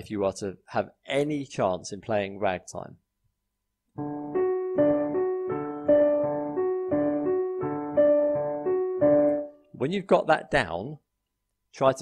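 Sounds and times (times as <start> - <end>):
ragtime piano playing: 4.0 - 9.5.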